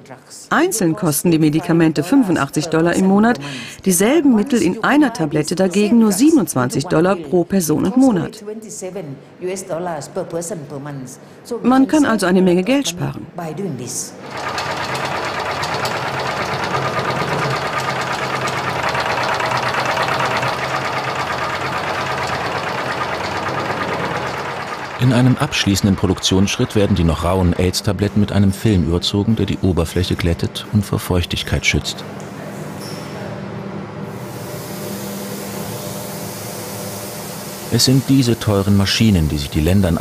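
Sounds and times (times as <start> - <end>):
low machine hum: 14.2 - 40.0
airy spray hiss: 34.2 - 40.0.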